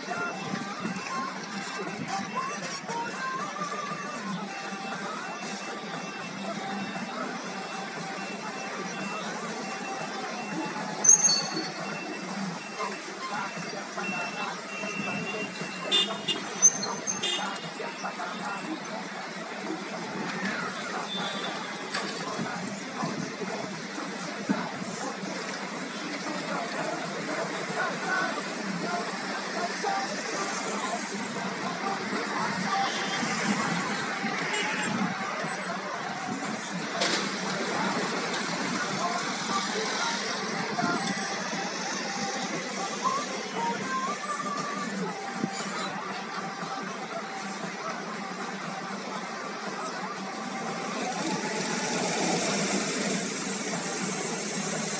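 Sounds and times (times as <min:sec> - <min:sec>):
people's voices: 0:00.0 - 0:54.9
road noise hum: 0:00.0 - 0:54.9
cars and scooters passing: 0:49.6 - 0:54.9.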